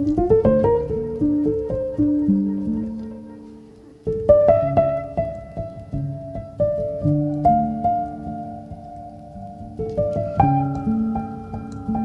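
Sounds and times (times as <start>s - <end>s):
faint clicks: 0.0s - 12.0s
muted piano: 0.0s - 12.0s.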